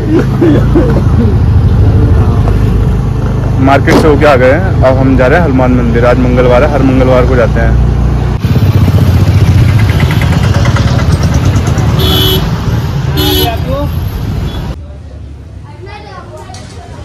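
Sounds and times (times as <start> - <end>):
busy road traffic: 0.0 - 17.0
vehicle horn toots: 11.9 - 13.7.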